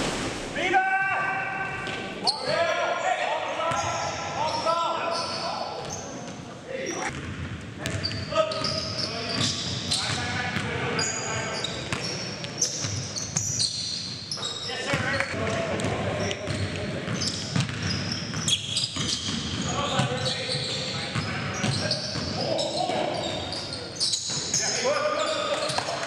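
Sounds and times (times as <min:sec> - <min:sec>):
sneakers squeaking: 0:03.6 - 0:26.0
basketball bouncing on gym floor: 0:15.8 - 0:20.2.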